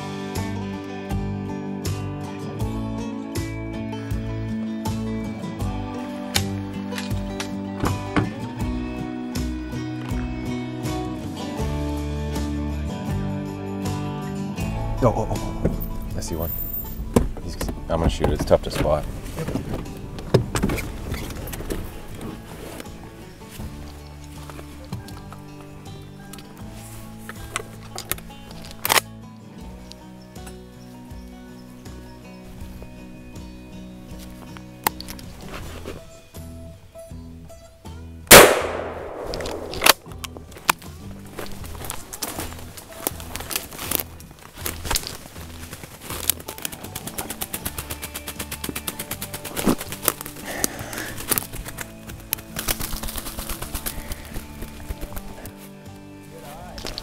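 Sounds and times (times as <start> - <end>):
background music: 0.0 - 57.0
shotgun shot: 38.3 - 40.1.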